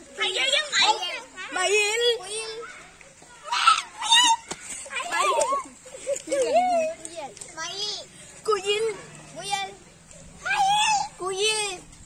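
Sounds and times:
children calling out and laughing: 0.0 - 12.0.

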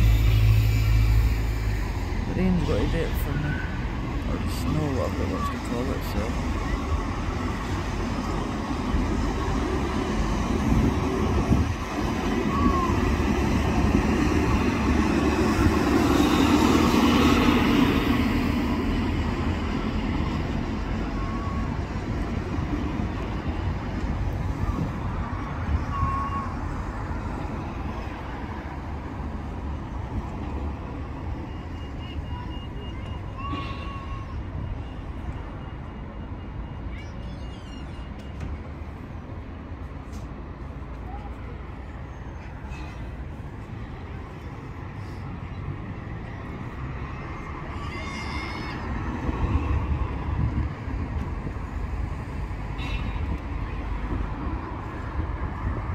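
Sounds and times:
road traffic rumble: 0.0 - 55.9
wind on microphone: 49.0 - 52.1.

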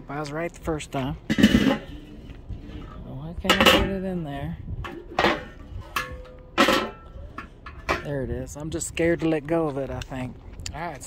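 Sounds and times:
metal lid scraping: 1.3 - 4.1, 4.8 - 8.1.

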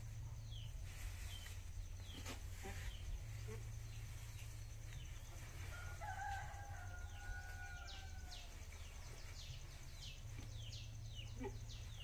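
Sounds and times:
small birds chirping: 0.0 - 12.0
rooster crowing: 5.6 - 8.6.

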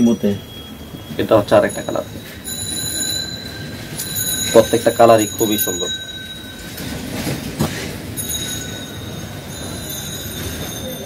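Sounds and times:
high-pitched whine: 0.0 - 11.0
cloth dress rustling: 2.2 - 10.8.

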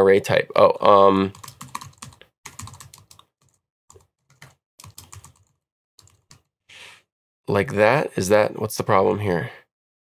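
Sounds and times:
computer keyboard typing: 1.3 - 6.5.

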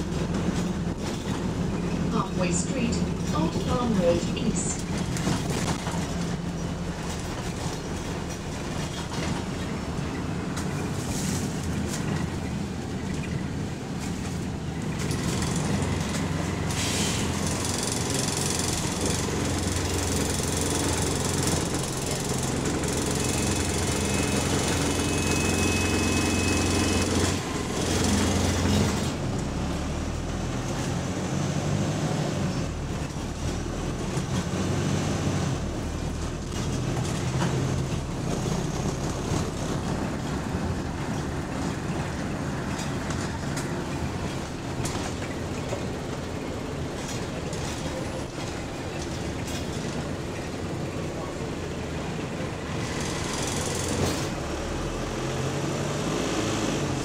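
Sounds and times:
bus diesel engine running: 0.0 - 57.0
road noise: 0.0 - 57.0.

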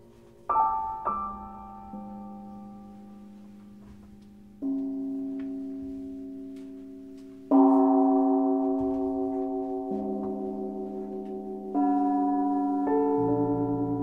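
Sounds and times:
slow digital piano chords: 0.0 - 14.0.

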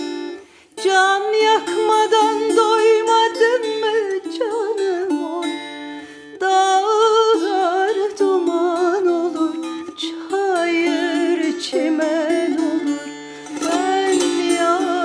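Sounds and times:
plucked lute: 0.0 - 15.0
woman singing folk song: 0.0 - 15.0.

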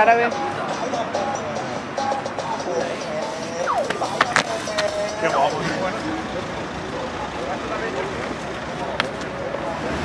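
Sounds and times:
people talking indistinctly: 0.0 - 9.9
city street traffic: 0.0 - 10.0.

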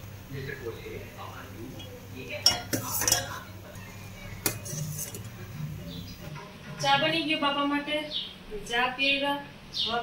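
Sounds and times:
spoon stirring in a saucepan: 1.8 - 6.4.

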